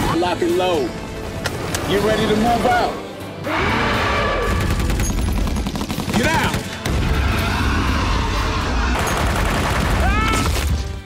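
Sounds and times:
rapid automatic gunfire: 4.6s - 6.9s, 9.0s - 10.2s.

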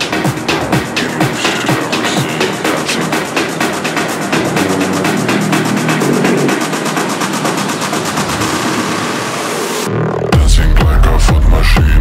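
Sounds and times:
rising noise sweep: 0.0s - 10.2s.

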